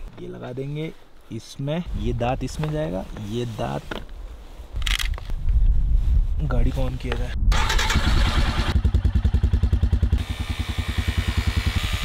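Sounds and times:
battery clips handling noise: 0:04.8 - 0:05.4
low rumble: 0:05.3 - 0:10.2.

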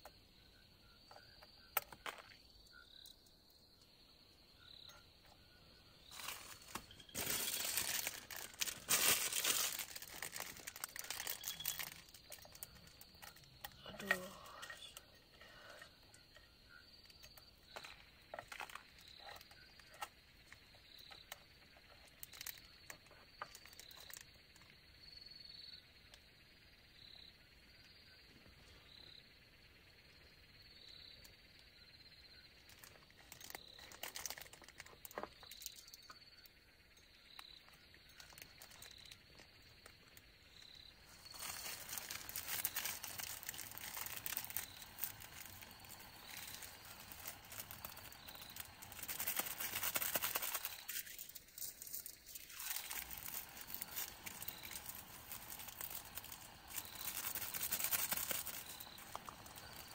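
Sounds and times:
high insect trill: 0:00.0 - 0:59.9
plastic sachets crinkling: 0:06.1 - 0:15.0, 0:23.4 - 0:24.3, 0:32.7 - 0:35.9, 0:38.1 - 0:39.4, 0:41.0 - 0:59.9
dry noodles crackling in metal tin: 0:06.1 - 0:16.4, 0:17.0 - 0:24.7, 0:32.6 - 0:36.2, 0:38.1 - 0:59.9.

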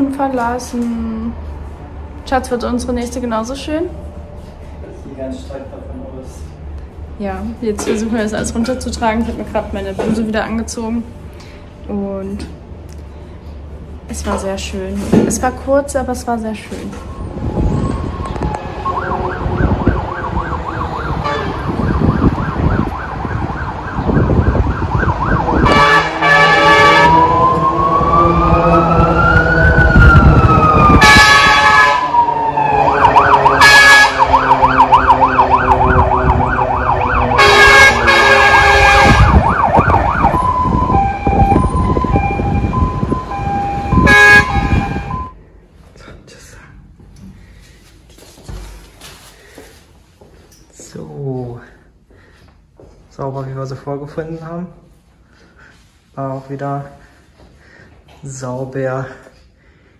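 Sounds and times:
emergency vehicle siren: 0:16.6 - 0:45.4
air horn blasts: 0:17.6 - 0:22.0, 0:25.4 - 0:29.1, 0:30.9 - 0:39.6, 0:40.6 - 0:45.3.

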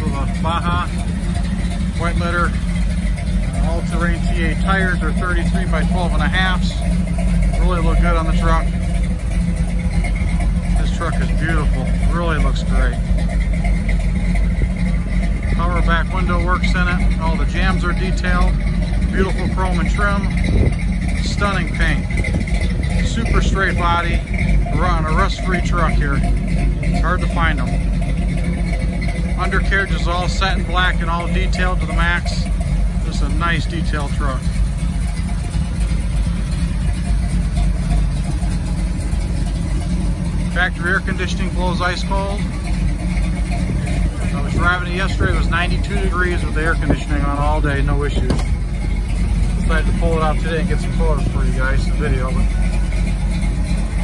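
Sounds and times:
engine idling low rumble: 0:00.0 - 0:54.0.

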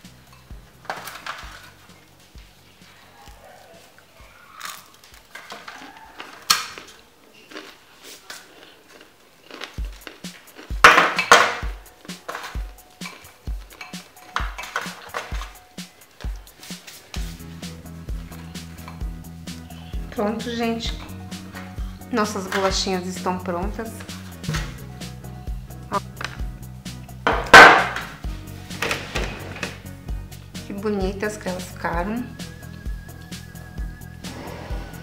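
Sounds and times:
background music with steady beat: 0:00.0 - 0:03.6, 0:09.6 - 0:35.0
crunching: 0:03.9 - 0:15.6
crisp toasts crackling and snapping: 0:04.5 - 0:16.6.

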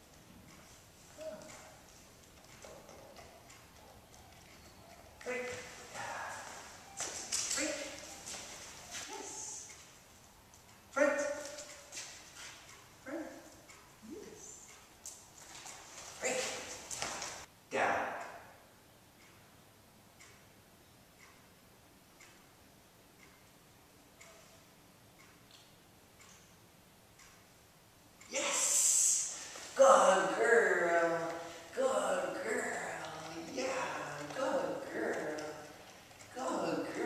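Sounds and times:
wall clock ticking: 0:00.0 - 0:14.0, 0:18.1 - 0:28.4, 0:29.2 - 0:37.0.

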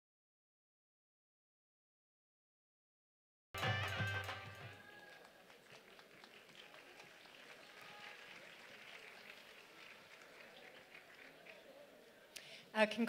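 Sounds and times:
scattered clapping: 0:03.6 - 0:12.0
low murmur of audience: 0:03.6 - 0:13.0.

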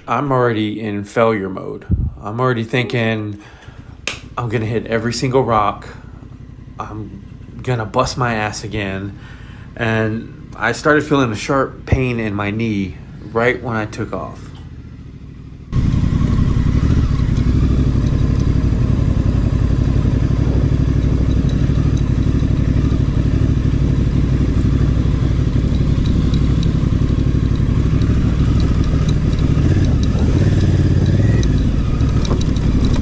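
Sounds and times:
motorcycle engine running slowly: 0:03.0 - 0:33.0.

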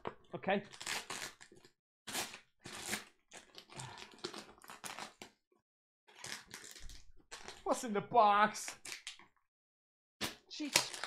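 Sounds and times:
packaging crunching and crackling: 0:00.6 - 0:05.4, 0:06.1 - 0:07.6, 0:08.6 - 0:09.2, 0:10.3 - 0:11.0.

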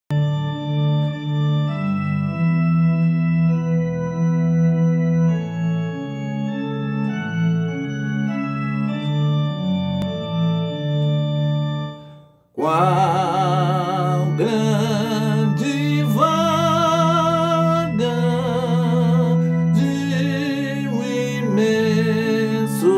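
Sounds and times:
organ playing hymn chords: 0:00.1 - 0:22.9.

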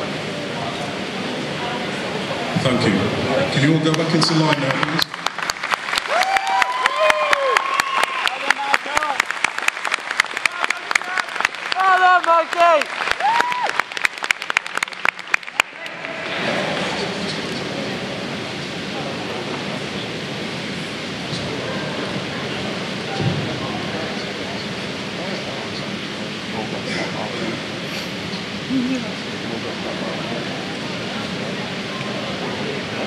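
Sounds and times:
audience clapping and cheering: 0:03.8 - 0:17.2
steady even noise: 0:15.7 - 0:33.0.

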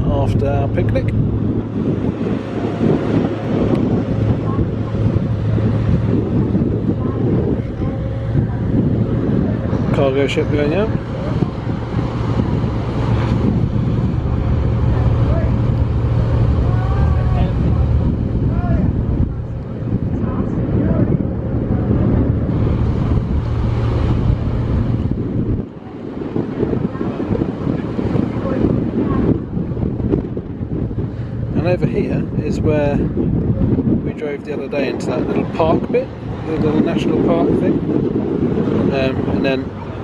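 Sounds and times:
low engine drone: 0:00.0 - 0:40.0
wind buffeting microphone: 0:00.0 - 0:40.0.

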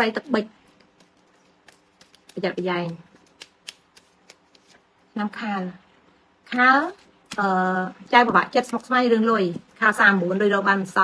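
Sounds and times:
woman speaking: 0:00.0 - 0:00.7, 0:02.3 - 0:03.2, 0:05.1 - 0:11.0.

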